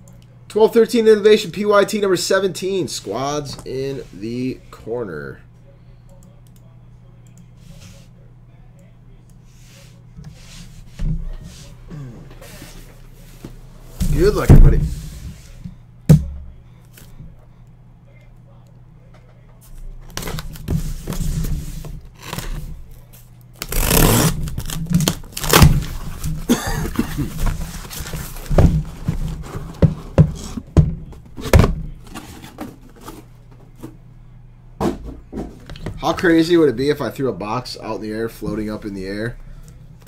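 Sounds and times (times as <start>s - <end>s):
ripping cardboard and tape: 20.0s - 23.0s, 23.6s - 30.6s
boxes knocking and scraping: 27.3s - 33.3s.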